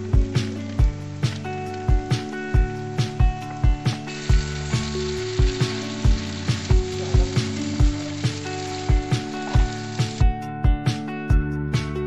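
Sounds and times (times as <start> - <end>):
noodles sizzling in a pan: 0.0 - 10.3
background music with a beat: 0.0 - 12.0.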